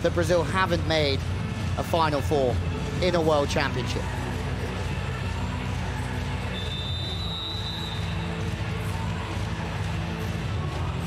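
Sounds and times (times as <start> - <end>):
music over public address system: 0.0 - 11.0.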